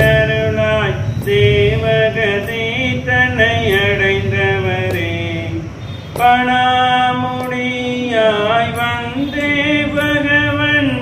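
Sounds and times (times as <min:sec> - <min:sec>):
man chanting a hymn: 0:00.0 - 0:11.0.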